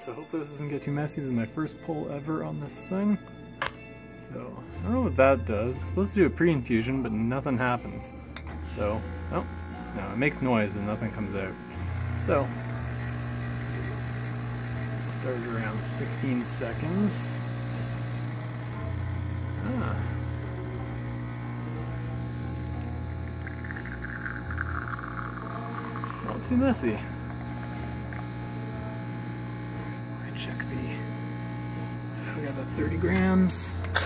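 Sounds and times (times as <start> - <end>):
espresso machine pump humming: 8.4 - 34.0.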